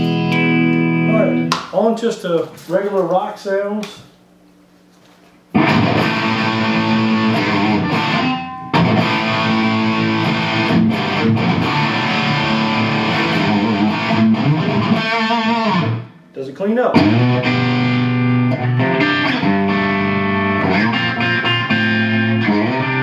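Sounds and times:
distorted electric guitar riffing: 0.0 - 1.5, 5.5 - 16.3, 16.9 - 23.0
low amp hum: 0.0 - 23.0.

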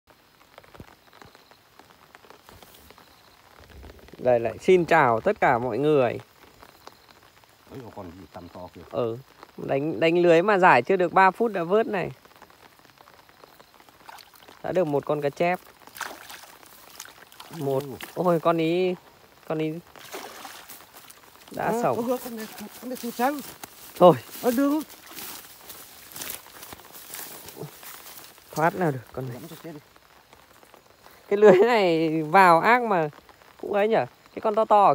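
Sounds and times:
rain falling on water: 0.1 - 34.9
net rustling through wet grass: 13.8 - 30.9
small clicks and crackles: 19.8 - 31.3.

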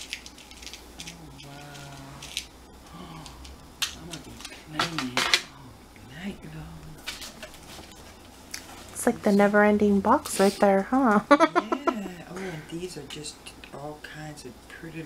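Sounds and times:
packaging rustling: 0.0 - 2.6.

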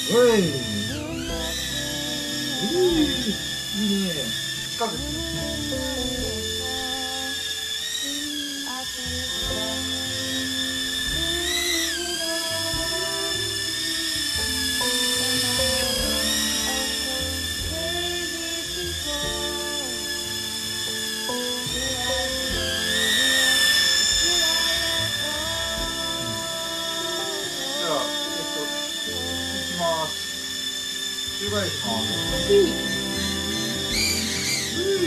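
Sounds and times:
background music: 0.0 - 7.9, 9.1 - 35.0
toy drone propellers whining: 0.0 - 35.0.

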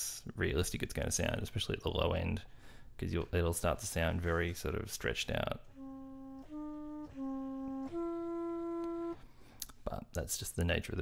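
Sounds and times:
low sampled flute notes: 5.6 - 9.3.

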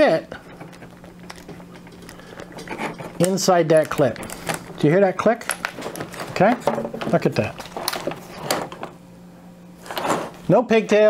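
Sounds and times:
steady low hum: 0.0 - 11.0
metal scraping and clicking: 0.4 - 4.8.

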